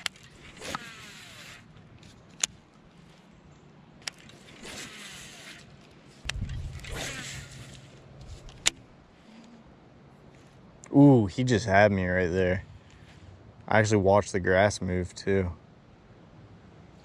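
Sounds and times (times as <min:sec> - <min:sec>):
reel whirring: 0:00.0 - 0:03.3, 0:04.0 - 0:09.6
fishing reel clicks: 0:04.0 - 0:08.8.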